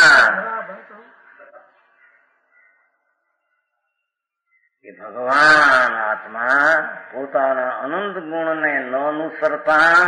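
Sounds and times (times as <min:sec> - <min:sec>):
man speaking: 0:00.0 - 0:01.8, 0:04.8 - 0:10.0.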